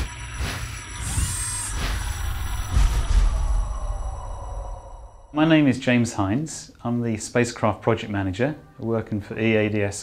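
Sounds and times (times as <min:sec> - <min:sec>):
low rumble: 0:00.0 - 0:05.5
bright high shimmer: 0:00.0 - 0:05.7.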